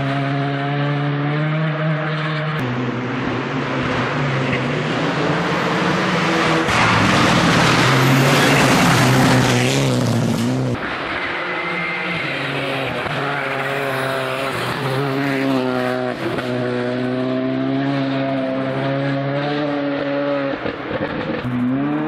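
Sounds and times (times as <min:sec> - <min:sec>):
rally car engine at high revs: 0:00.0 - 0:22.0.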